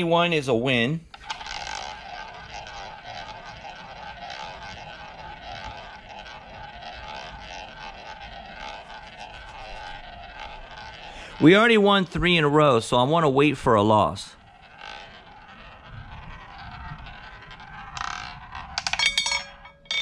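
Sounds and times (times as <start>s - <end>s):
roulette ball rolling on wooden track: 0.0s - 20.0s.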